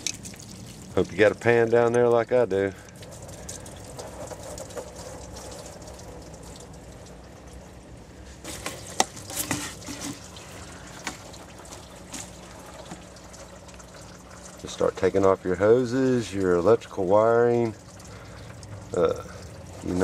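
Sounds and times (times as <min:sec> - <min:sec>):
coolant trickling into pan: 0:00.0 - 0:20.0.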